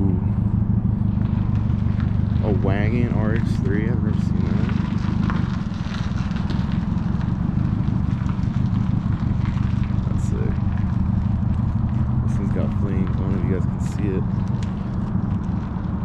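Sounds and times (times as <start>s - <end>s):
people's voices: 0.0s - 0.4s, 2.4s - 4.8s, 10.1s - 10.6s, 12.3s - 14.2s
engine idling: 0.0s - 16.0s.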